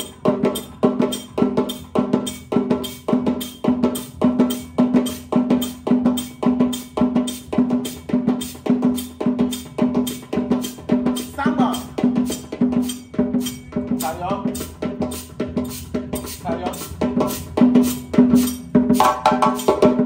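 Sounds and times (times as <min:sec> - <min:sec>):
hand drum rhythm: 0:00.0 - 0:20.0.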